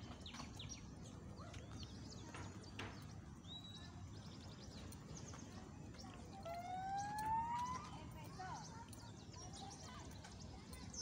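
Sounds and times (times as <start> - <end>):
birds chirping: 0.0 - 11.0
long rising bird call: 6.5 - 7.8.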